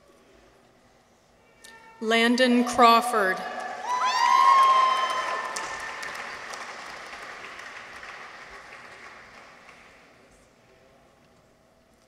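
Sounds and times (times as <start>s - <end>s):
crowd cheering: 3.3s - 9.9s
audience applause: 3.5s - 10.2s.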